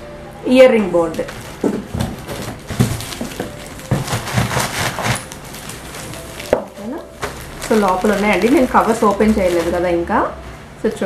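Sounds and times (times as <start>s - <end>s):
plastic wrapping crinkling: 1.1s - 10.2s.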